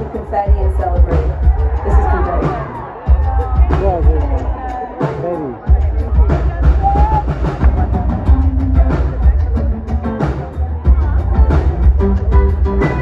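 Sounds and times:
live pop band playing: 0.0s - 13.0s
pulsing kick drum and bass: 0.0s - 13.0s.

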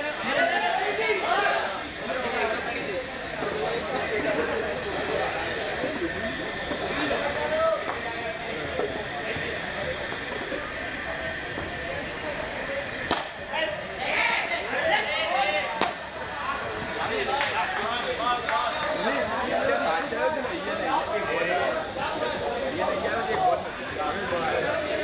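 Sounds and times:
people talking and calling out: 0.0s - 25.0s
steady hiss: 0.0s - 25.0s.

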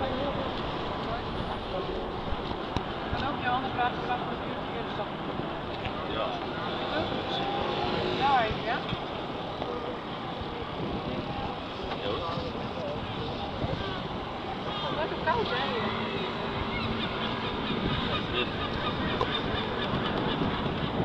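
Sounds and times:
voices talking: 0.0s - 21.0s
wind on microphone: 0.0s - 21.0s.

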